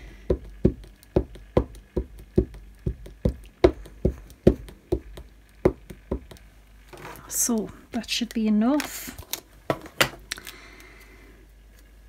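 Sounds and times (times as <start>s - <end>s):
ink pad knocking on stamp: 0.3s - 6.4s.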